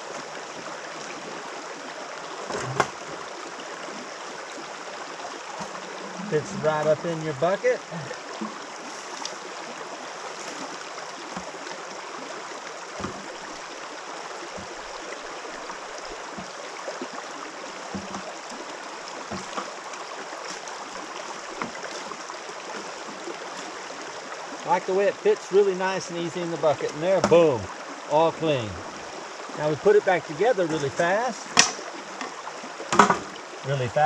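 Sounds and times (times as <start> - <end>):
river flowing over stones: 0.0 - 34.0.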